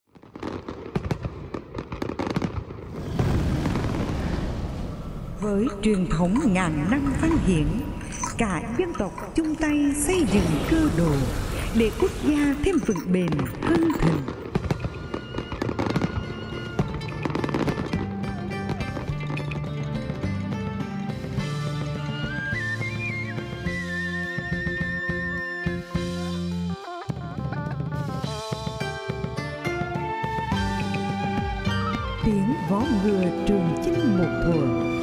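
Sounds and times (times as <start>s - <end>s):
fireworks bangs and crackles: 0.1s - 8.3s, 9.6s - 23.7s
fireworks rumble: 0.1s - 22.5s
background music with held notes: 14.5s - 35.0s.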